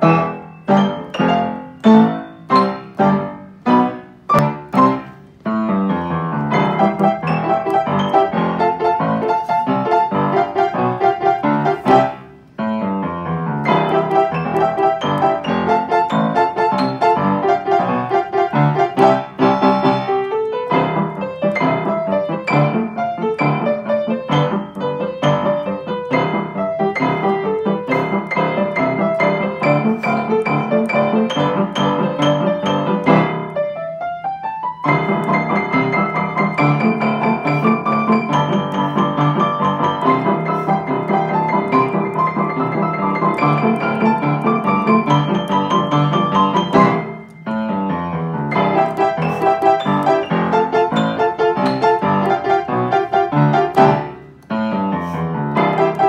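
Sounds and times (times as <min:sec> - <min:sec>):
upright piano calypso rhumba: 0:00.0 - 0:56.0.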